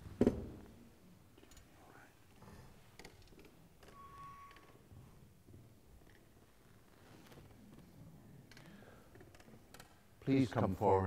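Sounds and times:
faint clicks and knocks: 1.4 - 10.1
faint steady tone: 3.8 - 5.2.

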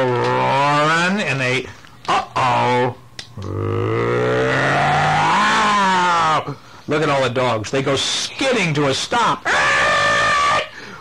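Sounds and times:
man imitating animal roar: 0.0 - 0.9, 2.1 - 6.5, 9.5 - 10.7.

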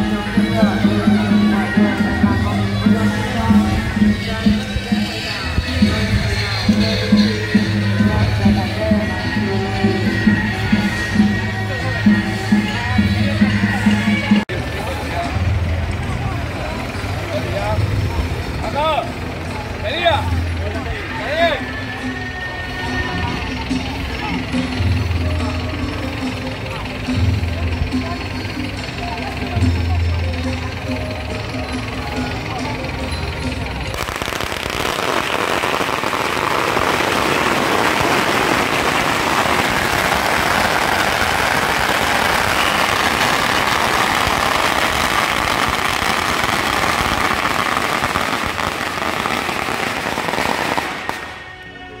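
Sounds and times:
crowd voices: 0.0 - 52.0
music: 0.0 - 52.0
firecrackers crackling: 33.8 - 51.9.

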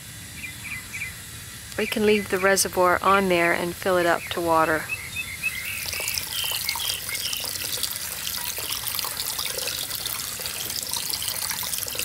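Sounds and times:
hose water splashing into reservoir: 5.6 - 12.0.

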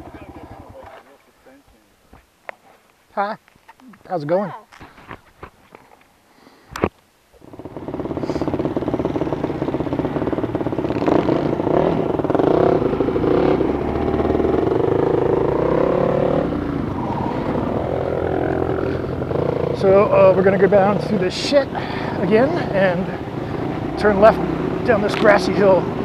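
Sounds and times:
dirt bike engine revving: 7.4 - 26.0.

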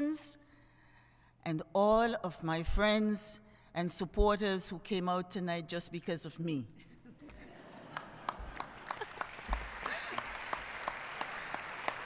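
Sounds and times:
audience applauding: 7.9 - 12.0.

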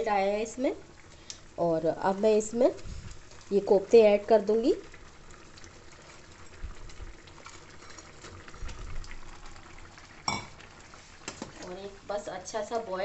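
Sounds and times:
gravy bubbling: 0.0 - 13.0.

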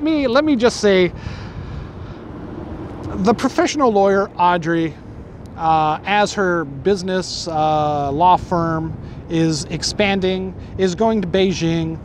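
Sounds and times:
distant traffic rumble: 0.0 - 12.0.

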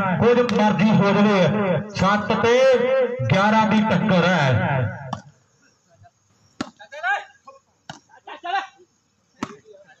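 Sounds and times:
hand striking volleyball: 6.6 - 6.8.

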